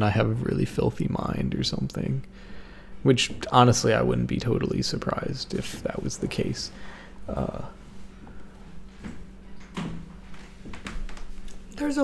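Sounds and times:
low steady hum: 0.0 - 12.0
faint knocks and thuds: 9.0 - 11.4.

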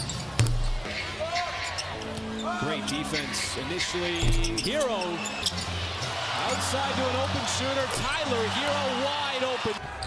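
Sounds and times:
sneaker squeaks: 0.0 - 5.8
arena crowd noise: 0.1 - 10.0
basketball bouncing on hardwood: 0.4 - 0.8.

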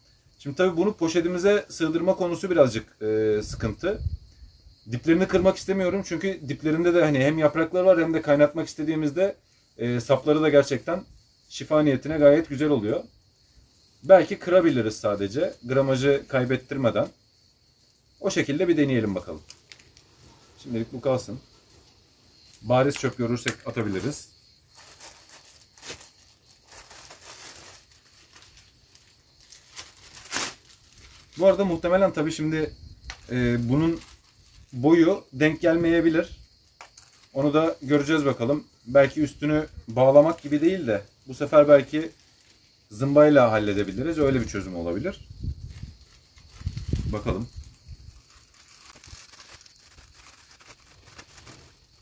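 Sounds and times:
dried herb stems rustling: 17.9 - 52.0
plastic bag crinkling: 19.0 - 20.2, 22.6 - 32.3, 33.0 - 35.0, 36.8 - 37.5, 41.8 - 42.7, 45.5 - 52.0.

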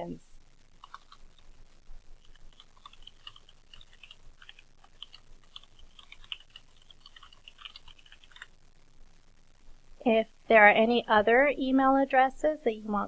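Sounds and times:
keyboard typing: 0.8 - 1.6, 2.2 - 8.5.

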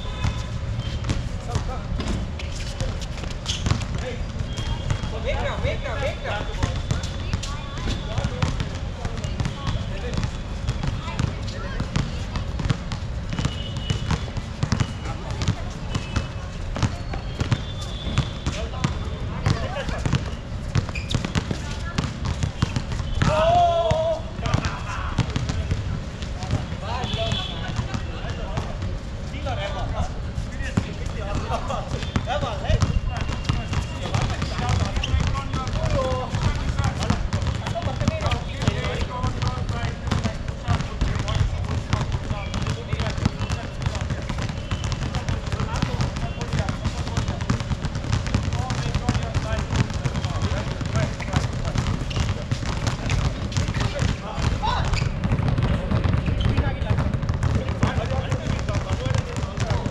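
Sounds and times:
basketball bouncing on hard court: 0.0 - 2.2, 2.8 - 28.8, 30.7 - 59.9
players shouting: 23.0 - 25.7.

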